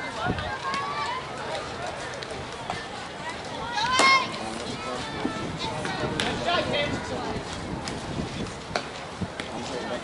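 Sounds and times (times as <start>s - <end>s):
distant chatter of voices: 0.0s - 10.0s.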